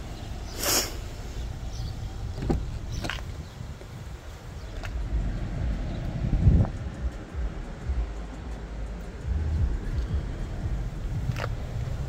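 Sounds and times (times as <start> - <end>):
dull thump: 2.3 - 3.2.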